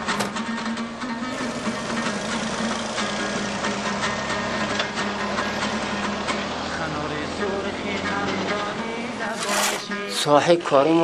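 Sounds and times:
garbage truck diesel engine: 0.0s - 10.2s
background music: 0.0s - 11.0s.

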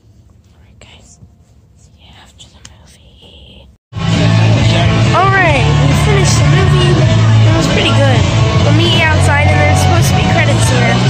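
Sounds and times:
faint whispering: 0.5s - 1.2s, 1.8s - 3.8s.

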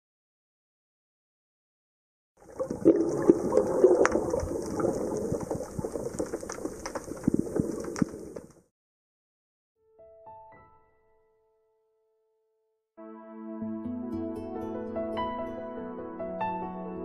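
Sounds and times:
water gurgling and bubbling: 2.4s - 8.5s.

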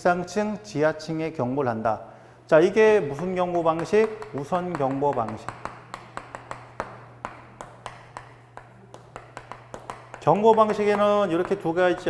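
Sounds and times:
chalk tapping on chalkboard: 3.1s - 12.0s.

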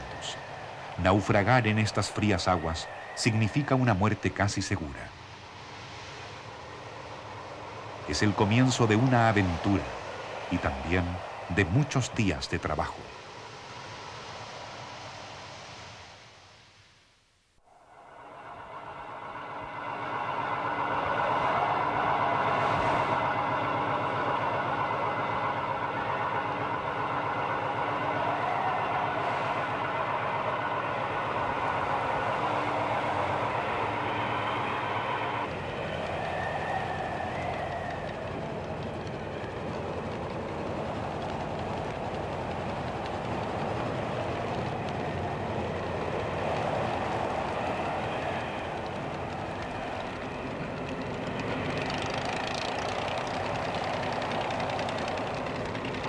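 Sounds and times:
boat engine running: 19.3s - 56.0s.

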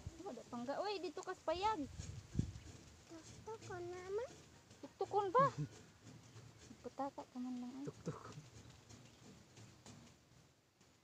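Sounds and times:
farm animal calling: 3.2s - 9.2s.

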